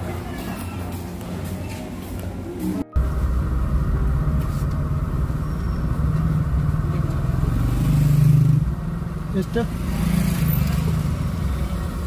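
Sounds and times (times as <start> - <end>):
car engine hum: 2.3 - 12.0
motorcycle passing at low revs: 6.0 - 12.0.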